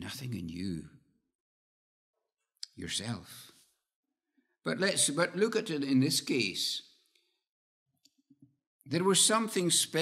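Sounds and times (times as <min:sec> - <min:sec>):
man speaking: 0:00.0 - 0:01.0, 0:02.6 - 0:03.6, 0:04.7 - 0:06.9, 0:08.9 - 0:10.0.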